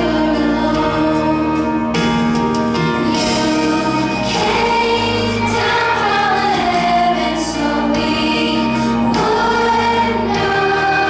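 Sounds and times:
children's choir singing: 0.0 - 11.0
instrumental accompaniment: 0.0 - 11.0.

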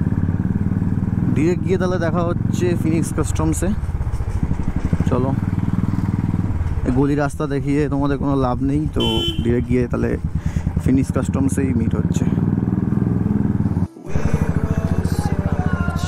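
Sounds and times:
motorcycle engine thumping: 3.3 - 10.8.

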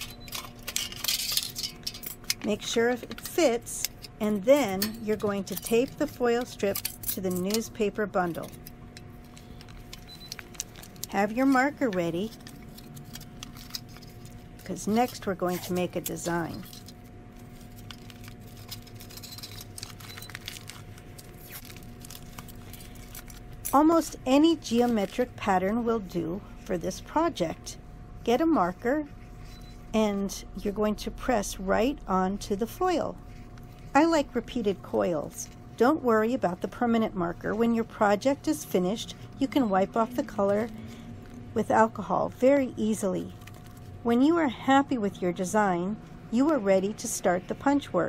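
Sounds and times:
tape crackling and rustling: 0.0 - 23.8, 43.3 - 44.0
aluminium foil crinkling: 0.0 - 24.2, 43.3 - 43.9
steady low hum: 0.0 - 48.0.

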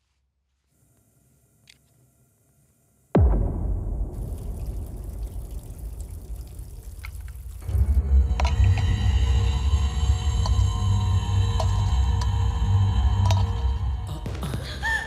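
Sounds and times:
suspenseful film score: 1.4 - 15.0
deep pulsing bass: 3.2 - 14.8.

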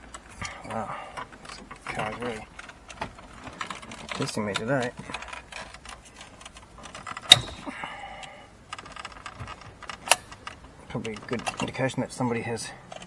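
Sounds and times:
plastic connectors rattling: 1.2 - 7.7.

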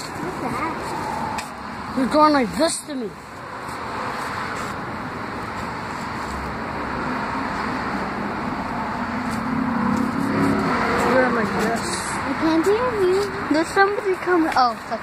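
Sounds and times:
vehicle tyres and engine approaching: 0.0 - 15.0.

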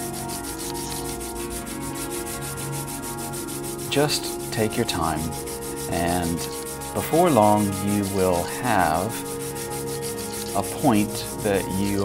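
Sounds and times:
pencil scratching on sandpaper: 0.0 - 12.0.

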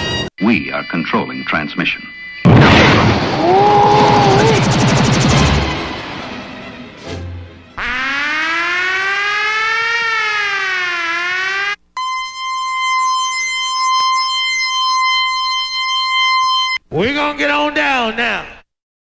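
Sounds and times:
electronic siren-like music: 7.8 - 16.8.

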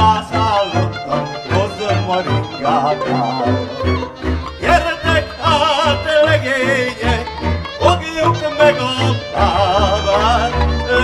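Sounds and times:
double bass: 0.0 - 11.0
violin with wide vibrato: 0.0 - 11.0.

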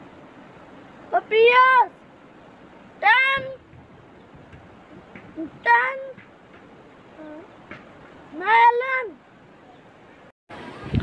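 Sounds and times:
boy calling out: 1.1 - 2.0, 3.0 - 3.7, 5.3 - 6.2, 7.2 - 7.5, 8.3 - 9.2.

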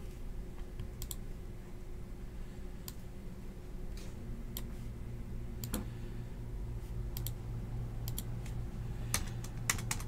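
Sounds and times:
steady low hum: 0.0 - 10.0
keyboard keys clicking: 9.1 - 10.0.

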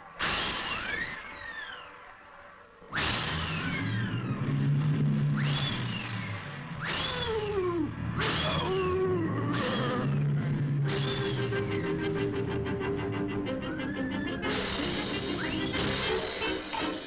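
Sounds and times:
downward sliding whistling tones: 0.3 - 2.2, 2.9 - 7.4, 10.8 - 16.2
low sustained orchestral notes: 8.8 - 16.5.

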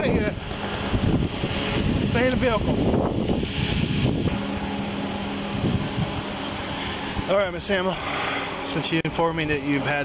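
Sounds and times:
wind buffeting microphone: 0.0 - 7.7
idling vehicle hum: 0.0 - 10.0.

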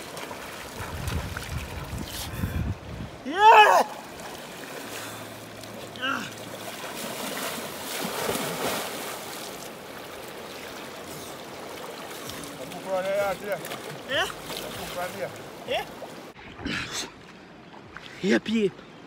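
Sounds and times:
water splashing from swimming: 0.0 - 2.4, 3.6 - 18.2
river current rushing: 0.0 - 16.4.

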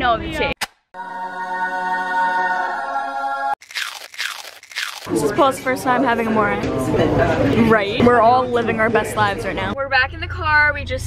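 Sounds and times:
pizza crust crunching: 3.6 - 5.1.

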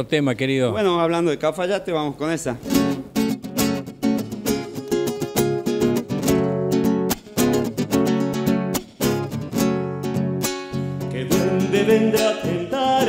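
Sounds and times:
acoustic guitar strumming chords: 2.7 - 13.0.

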